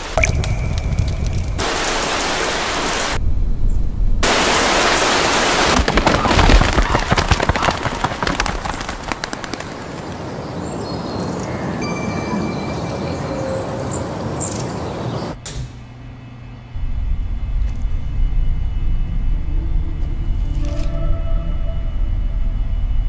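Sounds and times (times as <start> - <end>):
dense crackling sparks: 0.0 - 3.2, 4.2 - 10.3
steady hiss: 0.0 - 6.1
low droning music: 15.3 - 23.0.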